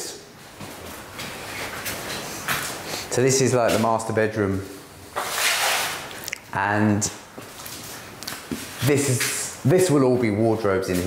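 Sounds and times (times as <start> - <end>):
footsteps and shuffling on boards: 0.4 - 3.9.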